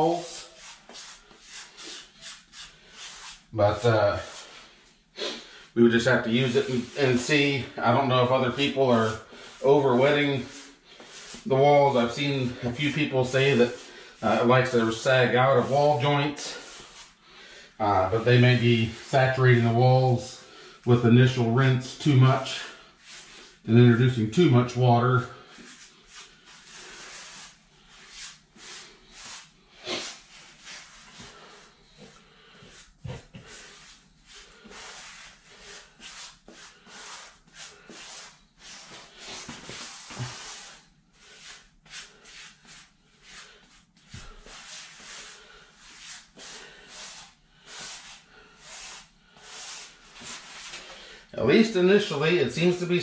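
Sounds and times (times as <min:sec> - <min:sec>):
grout float scraping tile: 0:00.1 - 0:17.2, 0:18.0 - 0:50.9.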